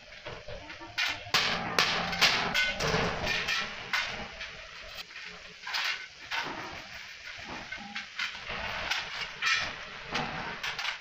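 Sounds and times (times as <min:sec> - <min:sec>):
hammering on sheet metal: 0:01.0 - 0:04.1.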